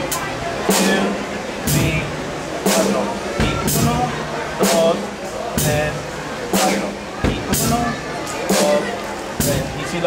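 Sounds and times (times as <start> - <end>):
bass drum kick: 3.4 - 4.2, 7.2 - 8.0.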